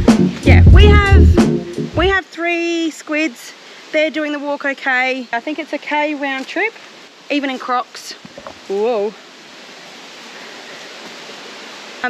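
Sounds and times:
rushing flowing water: 0.0 - 12.0.

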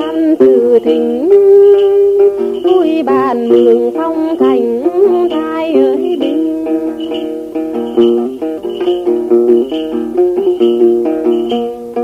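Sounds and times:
folk song melody: 0.0 - 12.0
plucked strings: 0.0 - 12.0.

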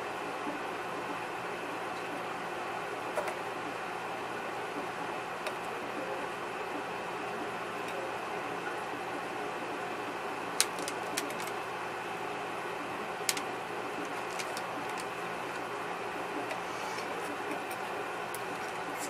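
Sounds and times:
room hum: 0.0 - 19.0
small objects clicking: 10.6 - 11.6, 14.1 - 15.6.

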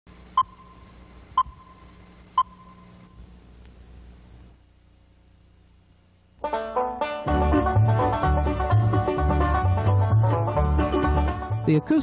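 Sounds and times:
faint low hum: 0.1 - 6.6
high electronic beeps: 0.4 - 3.2.

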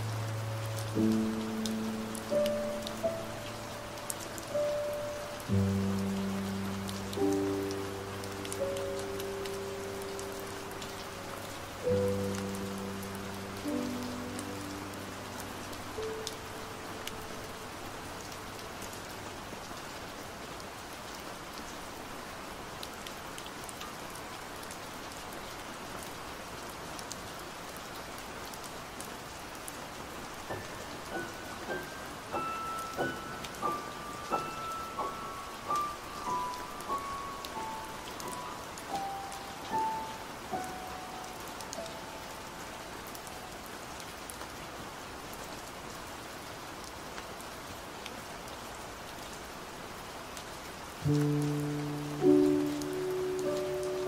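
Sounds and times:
low piano chord: 0.0 - 18.1, 30.5 - 43.1, 51.0 - 54.0
slow high piano melody: 0.0 - 19.0, 30.3 - 43.7, 51.0 - 54.0
steady rain: 0.0 - 54.0.

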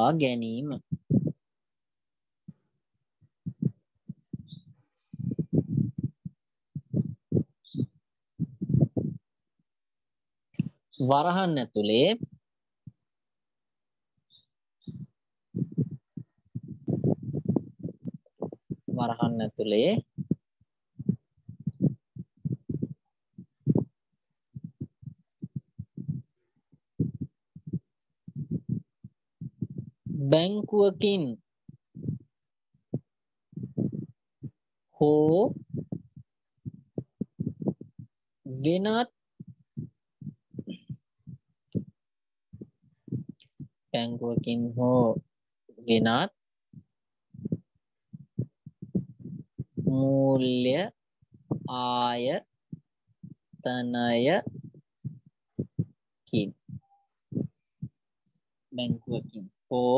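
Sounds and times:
muffled low thumps: 0.7 - 1.4, 3.4 - 9.2, 14.8 - 26.3, 27.0 - 32.3, 32.9 - 34.6, 35.3 - 38.2, 38.9 - 45.3, 47.4 - 50.0, 51.3 - 51.9, 52.7 - 58.0.

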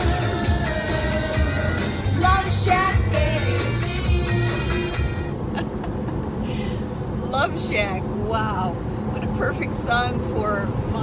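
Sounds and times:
music: 0.0 - 5.4
car cabin road noise: 0.0 - 11.0
woman speaking: 7.3 - 11.0.

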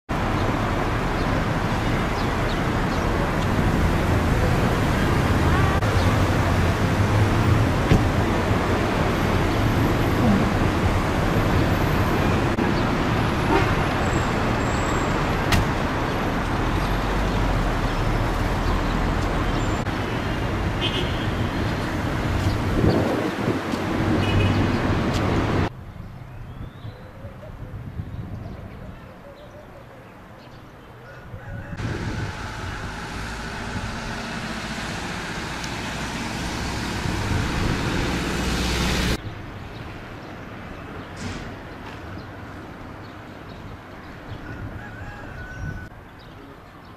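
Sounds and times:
road traffic rumble: 0.1 - 46.9.

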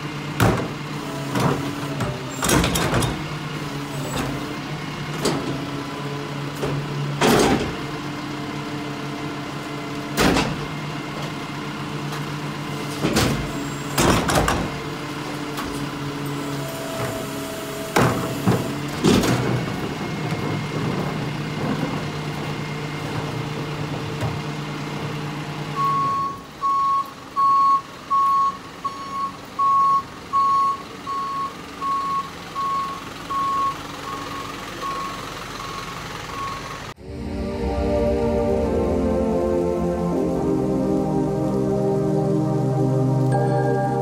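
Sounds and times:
garbage truck engine humming: 0.0 - 44.0
reversing alarm beeping: 25.8 - 39.4
music: 37.0 - 44.0.

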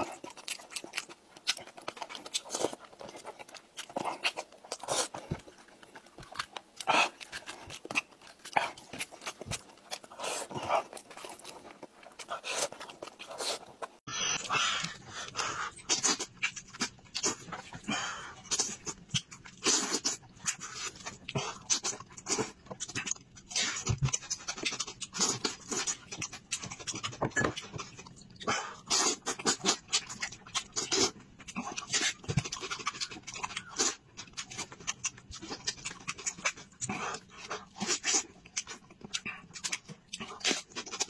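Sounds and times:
wet chewing and lip-smacking: 0.0 - 41.0.

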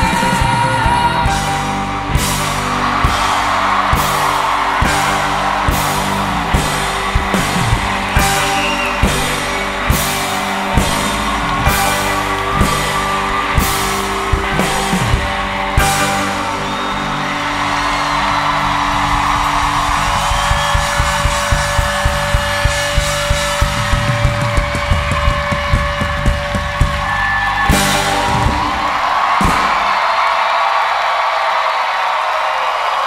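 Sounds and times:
rock band chord: 0.0 - 30.0
audience cheering and applauding: 0.0 - 33.0
drum hits: 2.1 - 16.2, 18.5 - 30.1.

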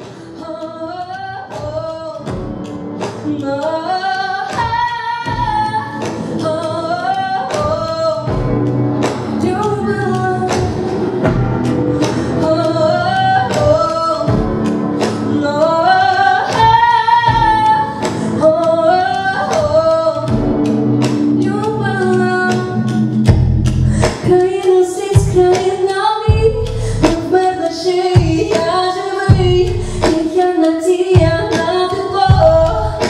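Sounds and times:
soft musical accompaniment: 0.0 - 33.0
woman singing into microphone: 0.0 - 33.0.

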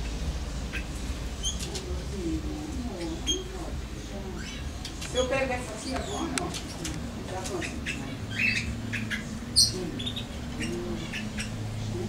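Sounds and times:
canaries chirping: 0.0 - 12.0
steady low hum: 0.0 - 12.0.

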